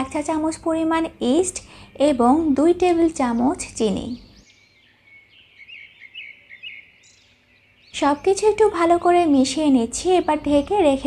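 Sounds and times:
faint birds chirping: 0.0s - 11.0s.

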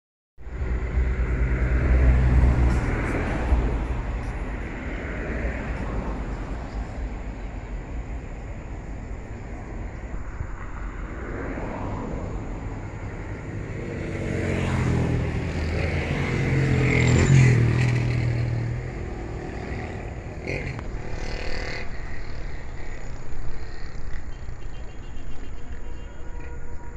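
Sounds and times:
vehicle engines passing by: 0.4s - 26.9s.

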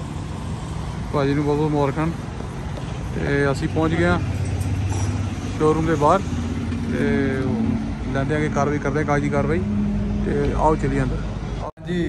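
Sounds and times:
vehicle engine running: 0.0s - 11.7s
people talking: 1.1s - 2.2s, 5.6s - 6.2s, 6.9s - 9.6s, 10.2s - 12.0s.

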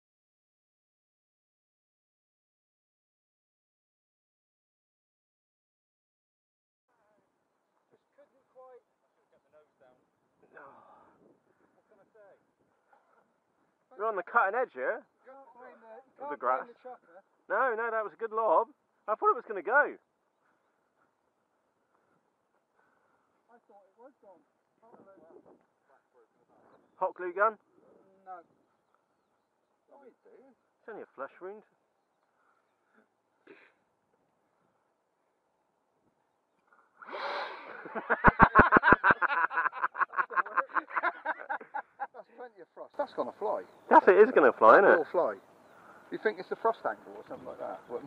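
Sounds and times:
men laughing hard: 37.0s - 42.3s
distant men talking: 42.2s - 48.0s.

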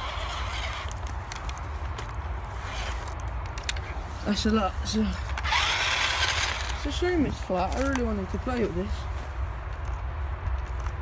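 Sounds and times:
snow crunching and scraping: 0.0s - 11.0s.

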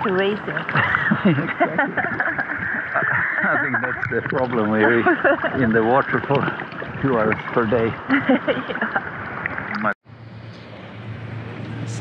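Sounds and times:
low even hum: 0.0s - 12.0s.

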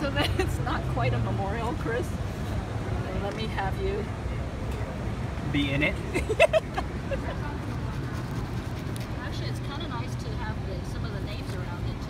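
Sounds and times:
low traffic rumble: 0.0s - 12.0s
faint indistinct voices: 7.0s - 12.0s.

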